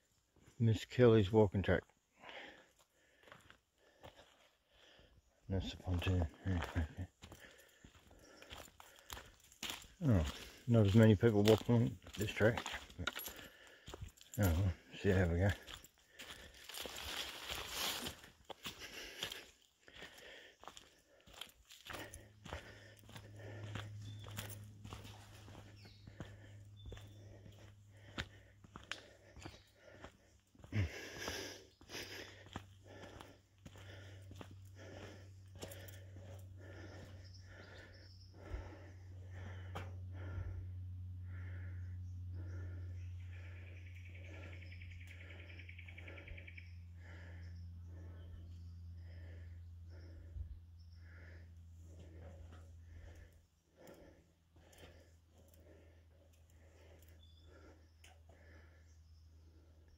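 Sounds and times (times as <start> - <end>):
footsteps walking: 3.2 - 4.4, 6.6 - 14.8, 15.5 - 37.7
low steady hum: 21.9 - 59.8.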